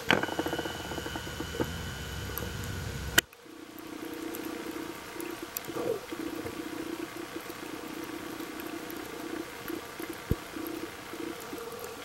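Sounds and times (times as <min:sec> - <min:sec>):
steady low hum: 0:00.0 - 0:04.8
faint scattered clicks: 0:00.0 - 0:12.0
low rumble: 0:00.7 - 0:03.2.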